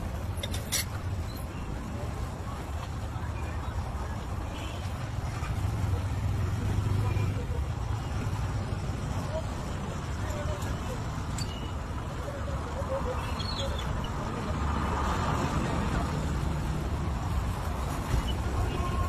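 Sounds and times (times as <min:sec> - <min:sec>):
low rumble of road traffic: 0:00.0 - 0:19.0.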